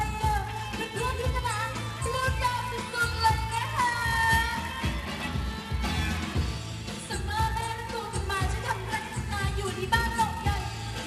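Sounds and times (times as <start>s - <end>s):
pop singing over a beat: 0.0s - 6.1s, 6.9s - 11.0s.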